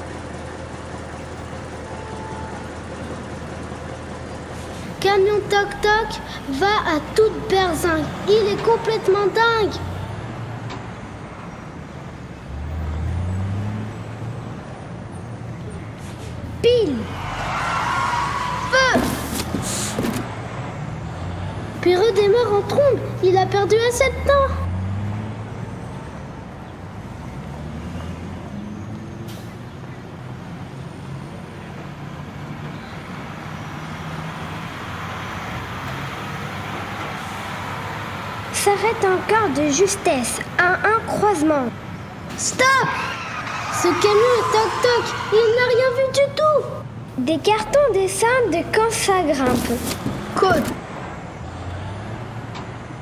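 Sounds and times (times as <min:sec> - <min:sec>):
vehicle engine running: 0:00.0 - 0:08.2
road noise: 0:00.0 - 0:53.0.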